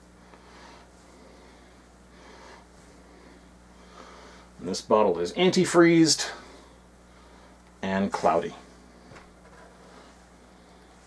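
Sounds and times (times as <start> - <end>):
low electrical hum: 0.0 - 11.0
faint breathing: 0.2 - 4.6, 6.2 - 7.7.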